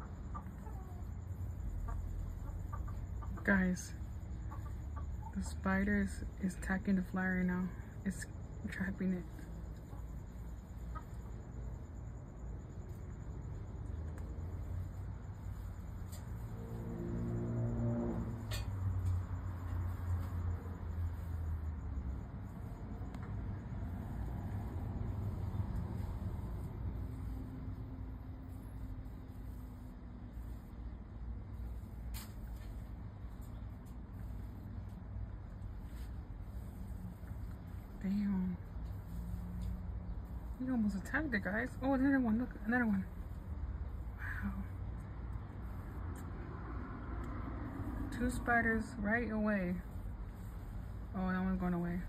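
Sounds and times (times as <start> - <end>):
low background rumble: 0.0 - 52.0
humming drone: 13.6 - 31.0.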